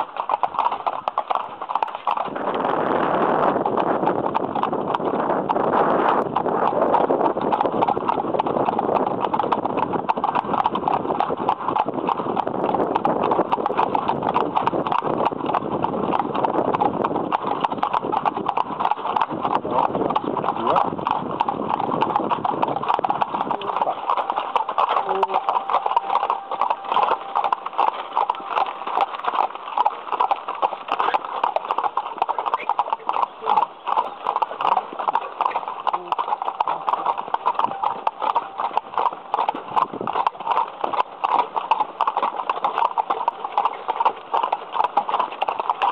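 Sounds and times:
horse hooves clip-clopping on asphalt: 0:00.0 - 0:45.9.

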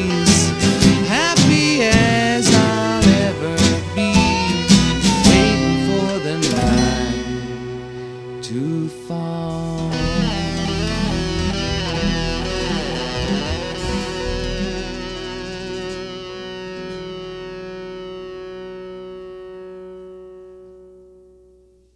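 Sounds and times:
electric guitar through effects: 0:00.0 - 0:21.8.

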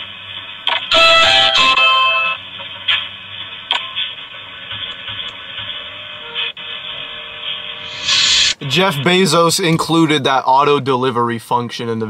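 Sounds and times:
faint hum: 0:02.4 - 0:12.0
held tone: 0:07.8 - 0:08.6.

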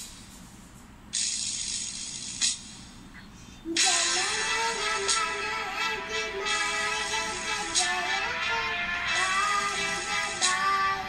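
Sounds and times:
steady hiss: 0:03.7 - 0:11.0.

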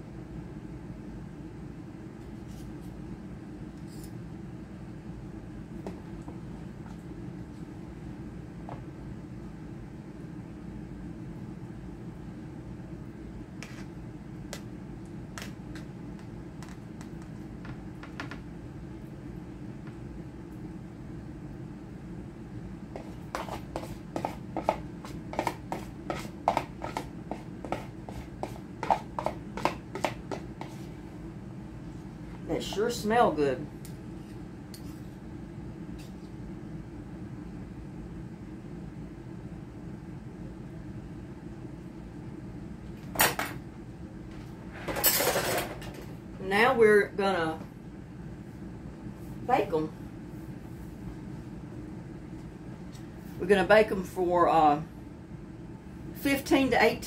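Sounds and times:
spoon scraping mixing bowl: 0:13.6 - 0:14.0, 0:23.0 - 0:30.9.

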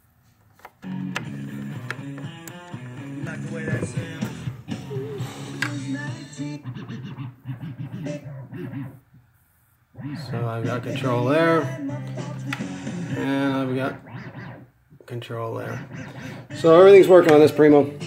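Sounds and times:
guitar-driven song from a speaker: 0:00.8 - 0:09.0, 0:10.0 - 0:13.8.

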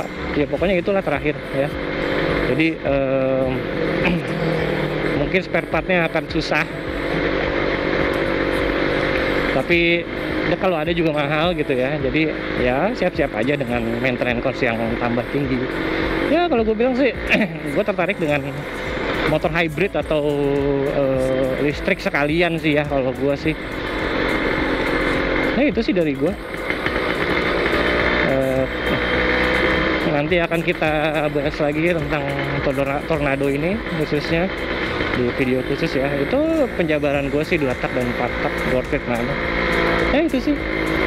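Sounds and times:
two-stroke motorcycle engine: 0:00.0 - 0:41.0
wind and road noise: 0:00.0 - 0:41.0.

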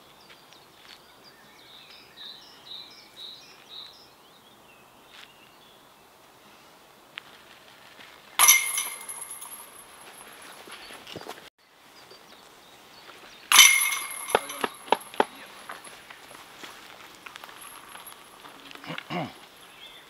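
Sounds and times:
disc clinking in basket: 0:08.4 - 0:10.5, 0:13.5 - 0:16.0, 0:17.4 - 0:18.3
disc striking metal chains: 0:08.4 - 0:10.6, 0:13.5 - 0:16.0, 0:17.4 - 0:18.4.

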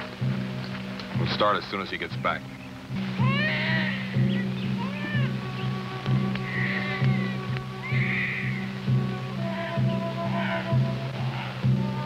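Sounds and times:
film score music: 0:00.0 - 0:12.0
high sliding animal calls: 0:03.2 - 0:05.4, 0:06.5 - 0:08.7, 0:09.5 - 0:11.6.

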